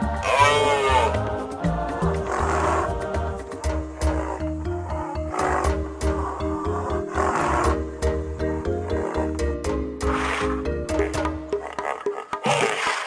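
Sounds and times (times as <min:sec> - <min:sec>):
background music: 0:00.0 - 0:13.0
rhinoceros calls: 0:00.2 - 0:01.4, 0:02.0 - 0:09.4, 0:10.0 - 0:13.0.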